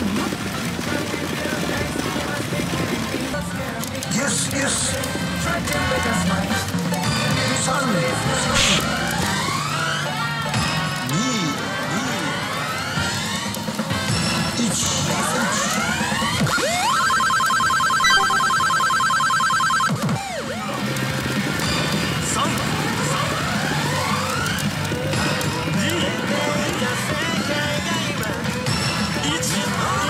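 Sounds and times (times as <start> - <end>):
pachinko machine music: 4.5 - 27.9
fast pulsing electronic tone: 16.4 - 20.6
electronic rising sweeps: 16.5 - 19.9.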